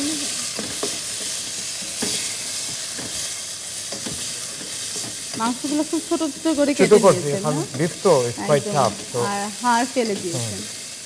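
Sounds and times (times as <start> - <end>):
meat sizzling in a pot: 0.0 - 11.0.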